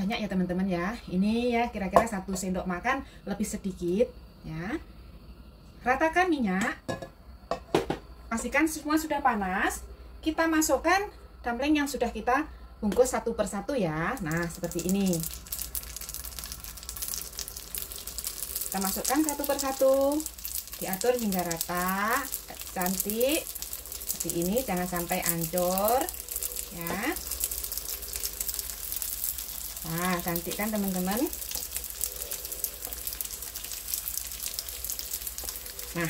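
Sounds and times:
dumplings sizzling in oil: 14.0 - 36.0.

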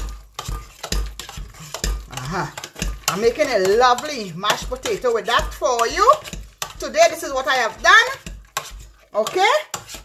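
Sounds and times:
metal masher scraping through mash: 0.0 - 10.0.

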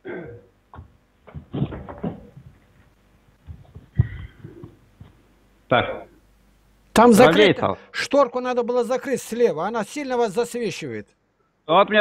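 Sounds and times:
headset microphone handling noise: 0.7 - 5.2.

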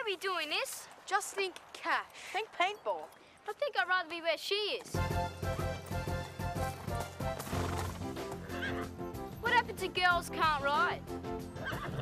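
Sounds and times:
background music with steady beat: 5.0 - 12.0
horse whinnying: 6.6 - 9.1, 11.5 - 12.0.

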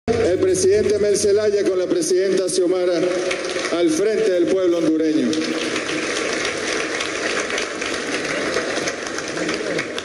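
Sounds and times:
audience applauding: 2.6 - 10.0.

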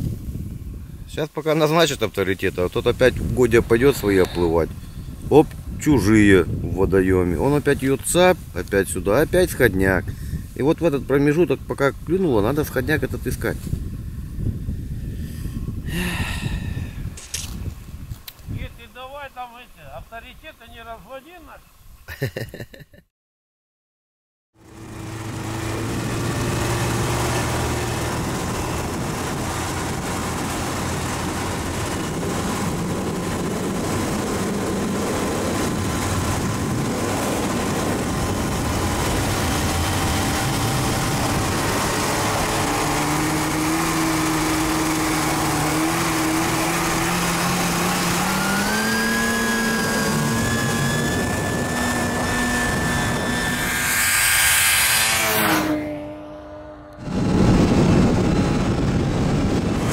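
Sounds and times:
rushing wind and snow: 0.0 - 22.1, 24.6 - 59.9
snowmobile engine at speed: 1.8 - 17.6, 24.6 - 59.9
snowmobile passing close by: 24.6 - 59.9.

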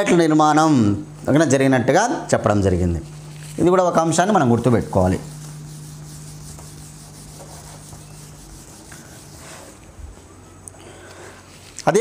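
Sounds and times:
steady low hum: 0.0 - 12.0
eraser rubbing on whiteboard: 4.7 - 9.8.

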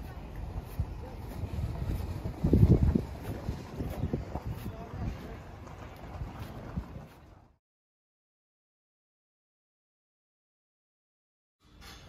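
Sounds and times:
wind buffeting microphone: 0.0 - 7.5.

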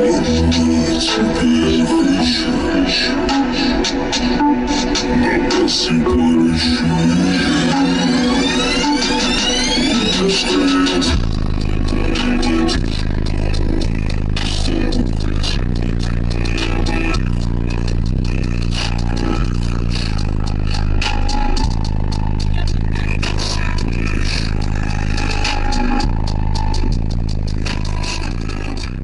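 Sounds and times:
loud bass-heavy music in car: 0.0 - 29.0.

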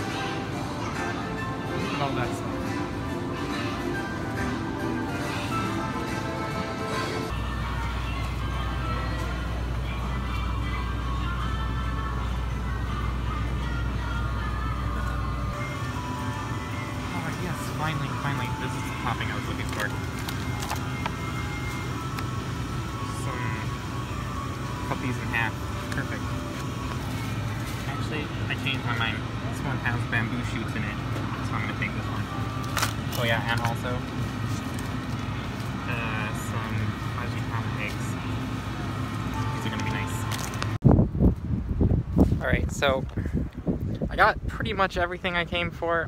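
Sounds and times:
background music: 0.0 - 40.8
steady low hum: 0.0 - 46.0.

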